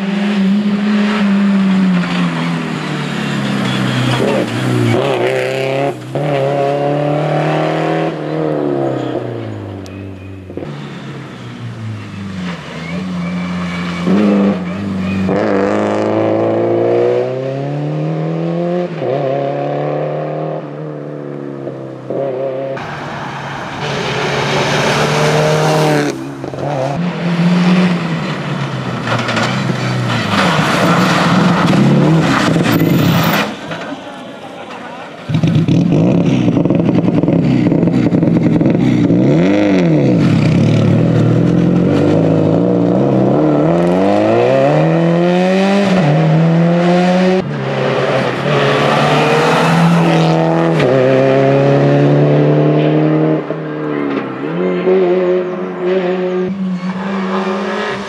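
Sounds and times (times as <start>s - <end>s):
rally car engine at full throttle: 0.0s - 58.0s.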